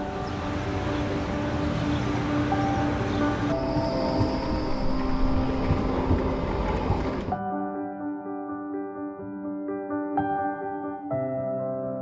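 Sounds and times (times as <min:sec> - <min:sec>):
train rushing rumble: 0:00.4 - 0:07.4.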